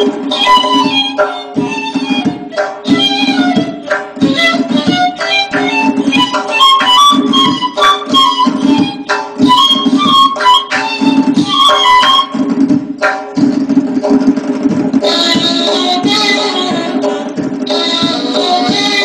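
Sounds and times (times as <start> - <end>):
reed flute melody: 0.0 - 12.5.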